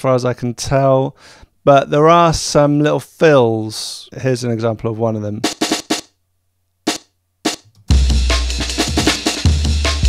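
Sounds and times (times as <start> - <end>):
drum and bass breakbeat: 6.9 - 10.0.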